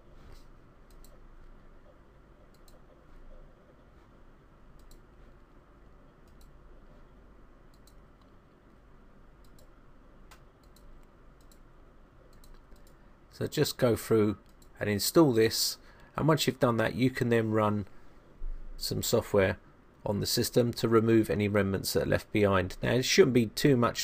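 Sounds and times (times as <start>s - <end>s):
low steady hum: 0.0s - 24.0s
computer mouse clicks: 0.3s - 1.7s, 2.4s - 3.8s, 4.7s - 5.5s, 6.2s - 6.6s, 7.7s - 8.8s, 9.4s - 9.7s, 10.3s - 11.7s, 12.3s - 13.0s, 14.4s - 14.7s.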